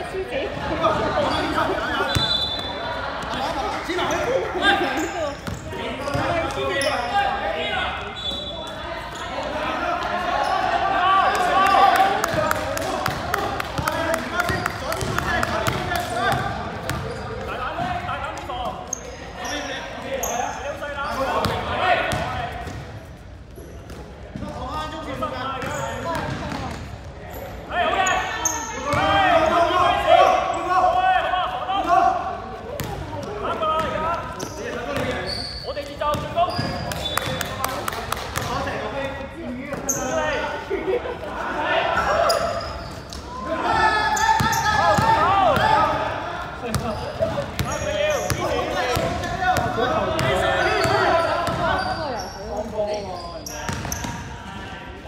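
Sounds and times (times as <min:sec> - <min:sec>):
sneakers squeaking: 0:00.4 - 0:30.8, 0:32.6 - 0:54.6
basketball bouncing on court: 0:05.4 - 0:06.6, 0:12.3 - 0:18.1, 0:21.4 - 0:23.0, 0:25.6 - 0:26.8, 0:32.8 - 0:34.0, 0:36.0 - 0:37.5, 0:46.6 - 0:51.9, 0:53.7 - 0:54.2
players calling out: 0:24.7 - 0:55.0.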